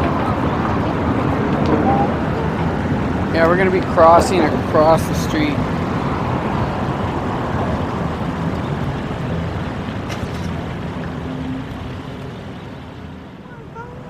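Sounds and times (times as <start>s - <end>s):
city street traffic: 0.0s - 14.0s.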